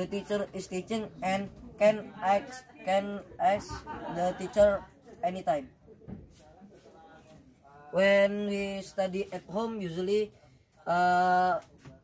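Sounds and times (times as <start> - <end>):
faint background voice: 0.9 - 8.0.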